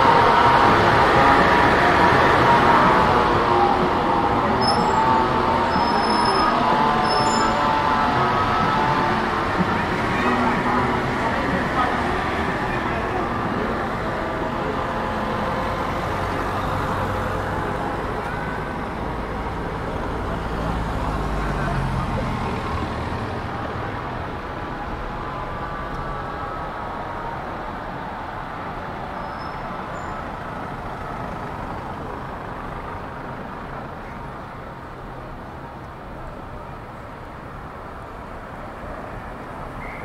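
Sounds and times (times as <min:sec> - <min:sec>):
passing motor vehicle engine: 0:00.0 - 0:26.2
voices: 0:00.0 - 0:27.7
background traffic: 0:00.0 - 0:40.0.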